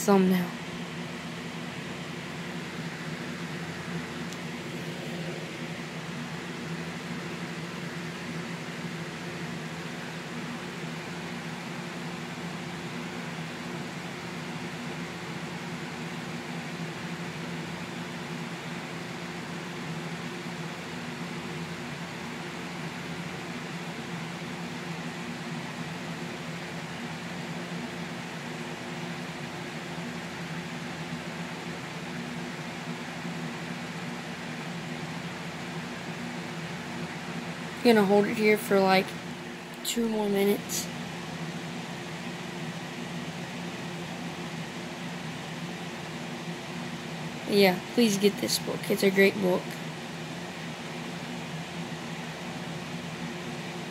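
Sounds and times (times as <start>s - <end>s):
machine hum: 0.0s - 53.9s.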